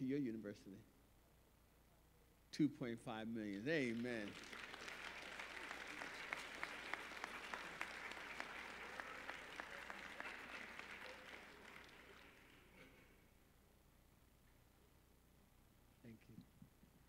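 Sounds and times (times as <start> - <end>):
audience applauding: 3.7 - 12.8.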